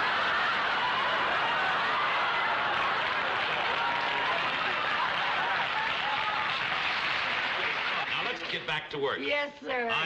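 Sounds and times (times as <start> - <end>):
audience laughing and applauding: 0.0 - 8.9.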